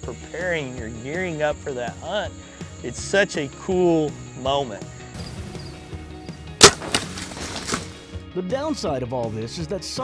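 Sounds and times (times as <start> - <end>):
soft background music: 0.0 - 10.0
arrow striking a deer: 5.2 - 8.1
small crack: 6.6 - 8.0.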